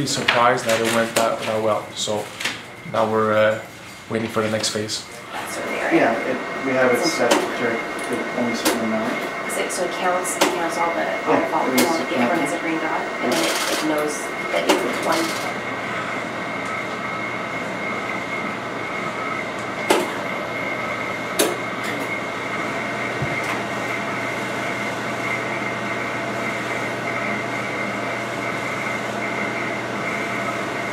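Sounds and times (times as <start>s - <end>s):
machinery humming with whine: 0.0s - 30.9s.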